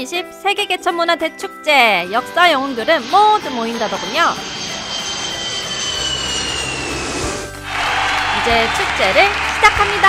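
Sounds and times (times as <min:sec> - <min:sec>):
jet engine rushing and whining: 0:02.0 - 0:09.6
low hum: 0:02.2 - 0:08.5.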